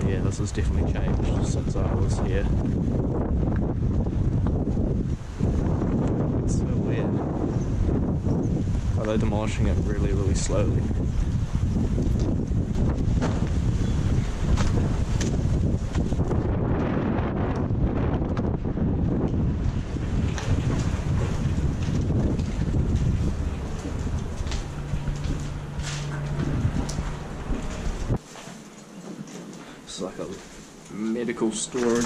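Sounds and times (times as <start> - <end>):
wind buffeting microphone: 0.0 - 28.2
footsteps on rubble: 19.2 - 32.0.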